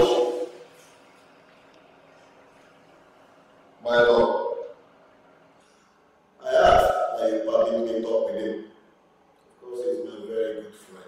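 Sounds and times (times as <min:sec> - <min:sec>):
man's drawn-out vocal sound: 0:00.0 - 0:00.7.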